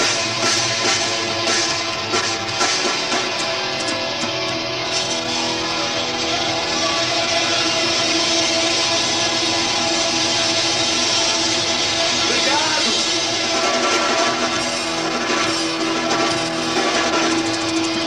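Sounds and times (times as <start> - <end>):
metal band playing live: 0.0 - 18.0.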